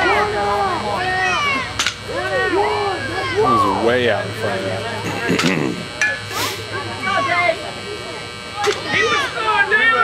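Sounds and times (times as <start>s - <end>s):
chatter of voices: 0.0s - 10.0s
short hiss: 6.3s - 6.7s.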